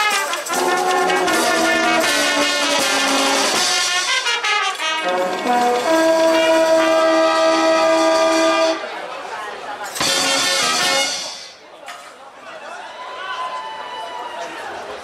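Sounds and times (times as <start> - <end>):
brass band playing: 0.0 - 9.0, 10.0 - 11.6.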